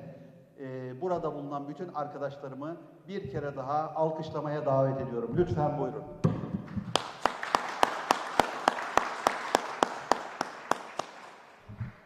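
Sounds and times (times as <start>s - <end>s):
loud close hand claps: 6.4s - 11.7s
small group applauding: 6.6s - 11.7s.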